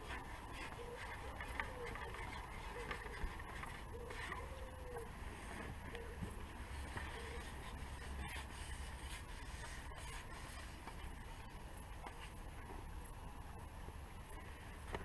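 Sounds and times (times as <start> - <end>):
light outdoor hiss: 0.0 - 15.0.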